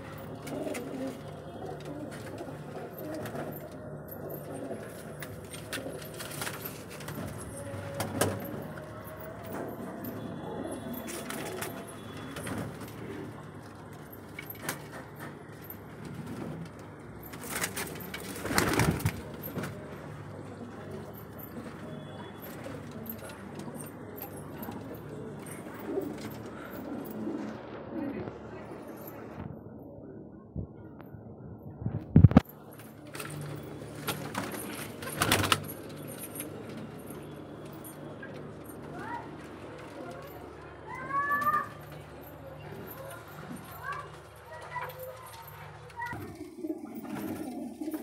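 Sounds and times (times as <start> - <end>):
pigeons cooing: 0.2 - 6.8.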